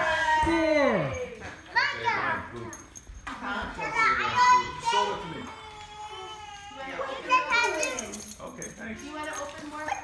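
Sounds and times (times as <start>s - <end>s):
children calling out: 3.8s - 8.2s.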